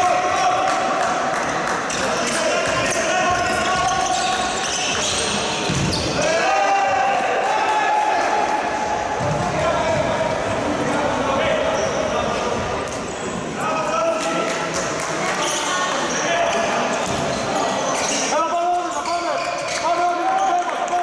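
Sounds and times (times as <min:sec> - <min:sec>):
ball bouncing on hall floor: 0:01.4 - 0:06.3, 0:09.2 - 0:10.4, 0:17.0 - 0:17.4
players shouting: 0:02.4 - 0:12.0.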